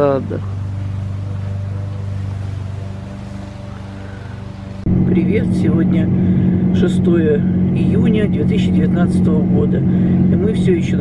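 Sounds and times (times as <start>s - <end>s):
car engine hum from inside: 0.0s - 11.0s.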